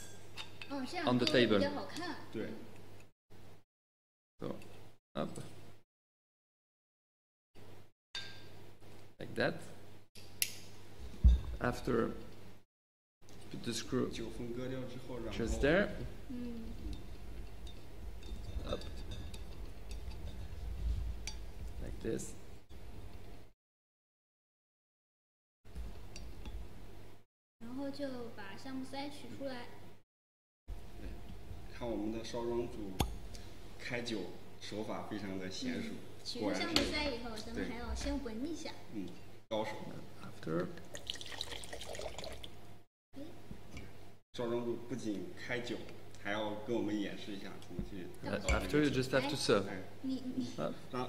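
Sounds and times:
wine pouring into glass: 0:40.8 - 0:42.6.

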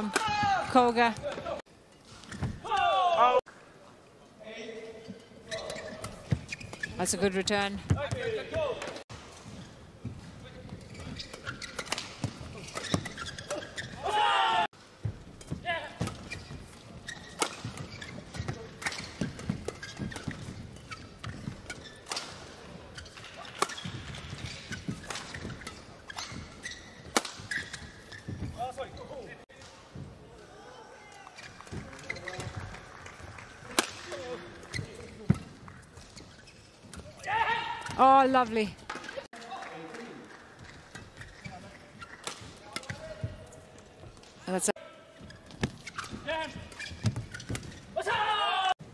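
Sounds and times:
rackets striking shuttlecock: 0:23.2 - 0:28.4.

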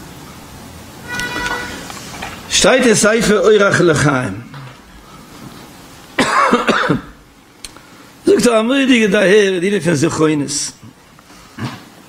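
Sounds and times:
man coughing: 0:06.2 - 0:07.2.

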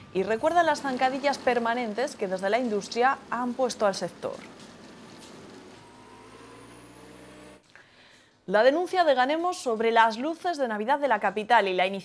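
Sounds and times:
harvester engine running: 0:00.0 - 0:07.6.

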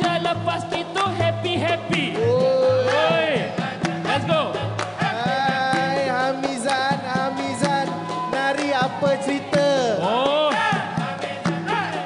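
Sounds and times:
man singing sliding melody: 0:00.0 - 0:12.0
maracas: 0:00.0 - 0:12.0.

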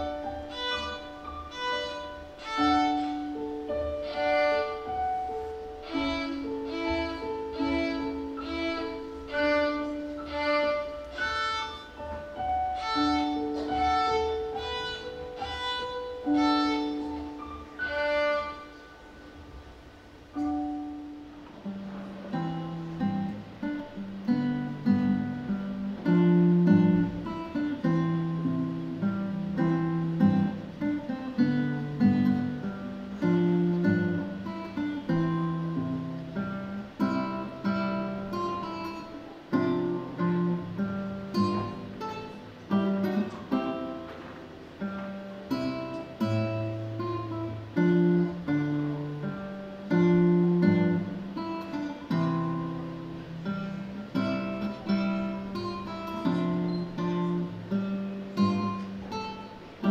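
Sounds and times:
fingerpicked classical guitar: 0:00.0 - 0:59.9.

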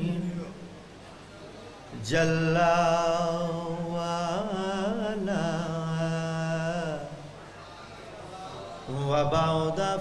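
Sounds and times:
man chanting melodically: 0:02.0 - 0:07.3, 0:08.8 - 0:10.0.

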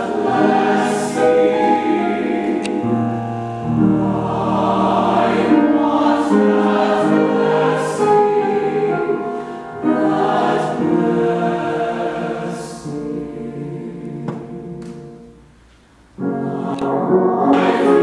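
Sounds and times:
mixed choir singing: 0:00.0 - 0:14.8, 0:16.2 - 0:18.0.

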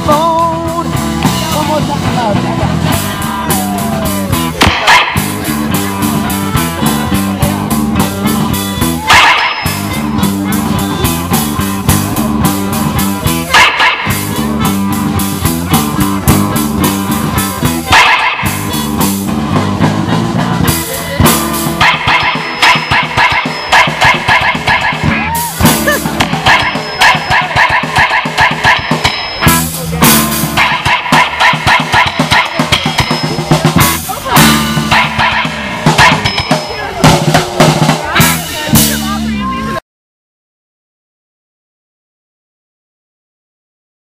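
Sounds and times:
drum kit beat: 0:00.0 - 0:39.8
electric guitars: 0:00.0 - 0:39.8
live rock band playing: 0:00.0 - 0:39.8.

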